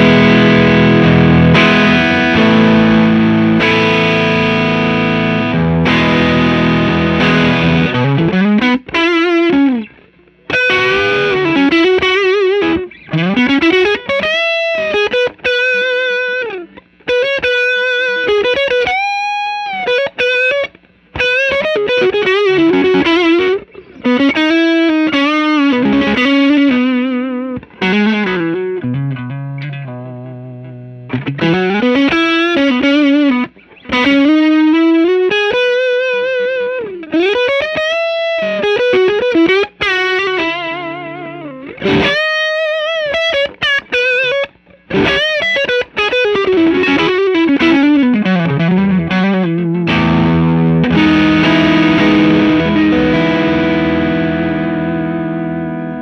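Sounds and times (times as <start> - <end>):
overdriven electric guitar: 0.0 - 56.0.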